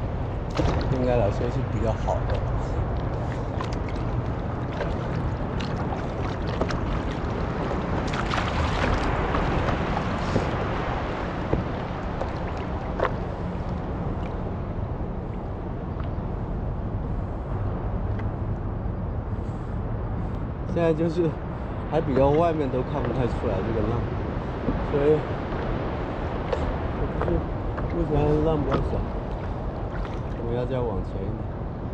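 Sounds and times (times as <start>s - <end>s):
wind on microphone: 0.0s - 31.9s
sharp little splashes: 0.4s - 14.6s, 23.0s - 30.4s
water lapping against surfboard: 0.4s - 16.4s, 21.7s - 30.4s.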